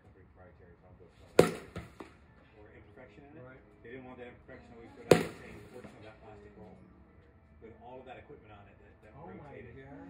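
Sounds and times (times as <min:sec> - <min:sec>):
bat striking softball: 0:01.4 - 0:02.2, 0:05.0 - 0:05.9.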